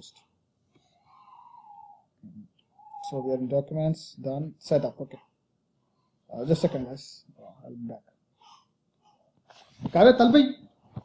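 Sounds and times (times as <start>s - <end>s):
faint breathy whisper-like sound: 0.0s - 3.4s
man speaking: 2.3s - 5.3s, 6.3s - 8.1s, 9.8s - 10.7s.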